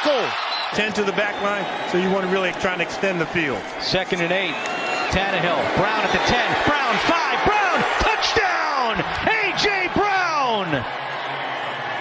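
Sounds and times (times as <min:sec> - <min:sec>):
man giving excited commentary: 0:00.0 - 0:10.9.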